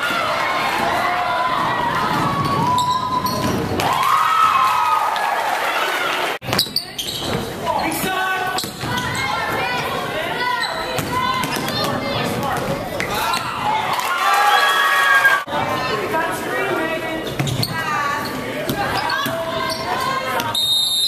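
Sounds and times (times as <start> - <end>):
players and spectators shouting: 0.0 - 6.4, 7.7 - 17.0, 17.8 - 20.6.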